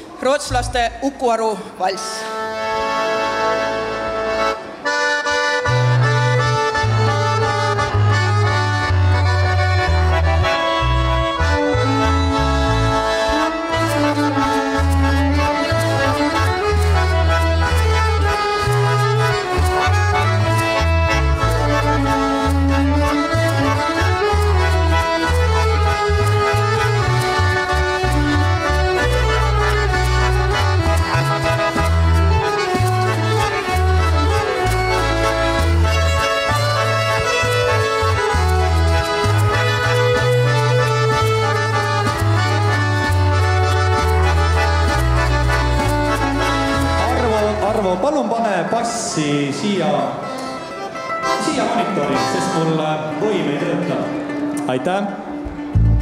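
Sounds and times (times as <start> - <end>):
accordion folk dance music: 0.0 - 56.0
moving bass line: 5.6 - 48.2, 55.5 - 56.0.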